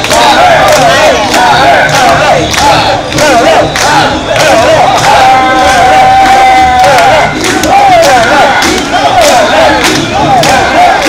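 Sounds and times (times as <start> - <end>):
group chanting in unison: 0.0 - 11.0.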